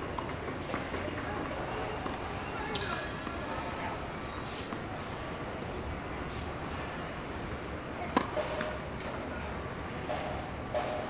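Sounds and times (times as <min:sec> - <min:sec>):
faint voices: 0:00.0 - 0:11.0
tennis ball bouncing on hard court: 0:08.1 - 0:08.8.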